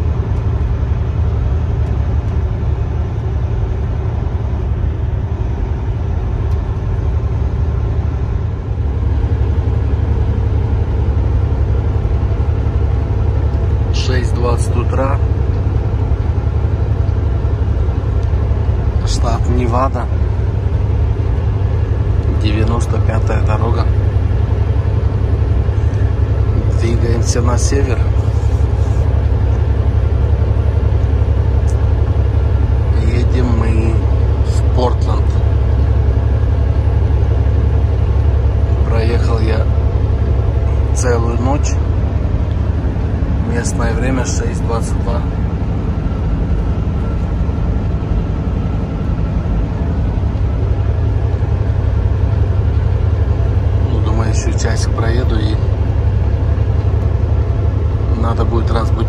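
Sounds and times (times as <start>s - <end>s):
truck engine and tyres rumbling: 0.0s - 59.0s
voice: 13.9s - 15.2s, 19.0s - 20.2s, 22.2s - 24.0s, 26.6s - 28.6s, 32.9s - 35.4s, 38.8s - 39.7s, 40.7s - 41.8s, 43.4s - 45.4s, 53.8s - 55.7s, 58.1s - 59.0s.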